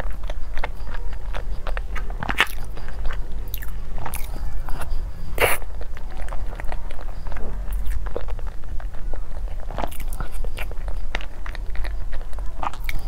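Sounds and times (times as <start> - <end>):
wet smacking and chewing: 0.0 - 13.0.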